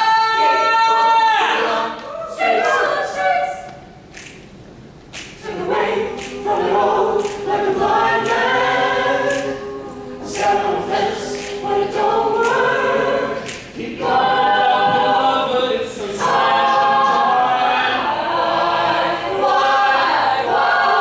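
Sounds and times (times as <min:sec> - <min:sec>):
a cappella group singing: 0:00.0 - 0:03.9, 0:05.2 - 0:21.0.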